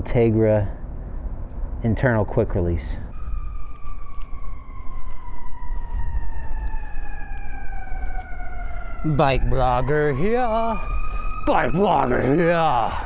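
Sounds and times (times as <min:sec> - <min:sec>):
siren-like tone gliding down: 0:03.1 - 0:13.0.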